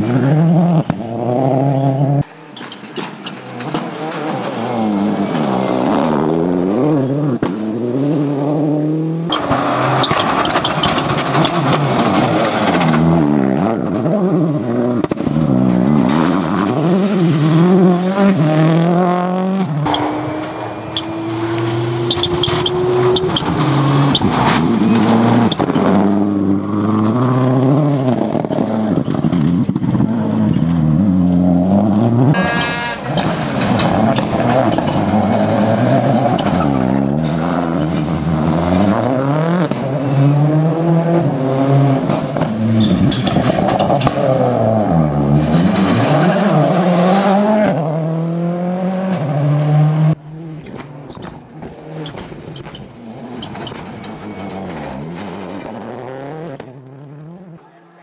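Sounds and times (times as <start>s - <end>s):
rally car engines revving: 0.0s - 58.0s.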